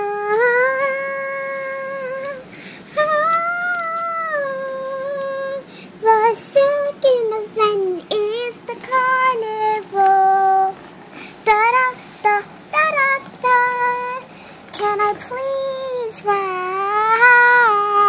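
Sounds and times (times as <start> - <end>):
child singing: 0.0 - 10.8, 11.4 - 18.0.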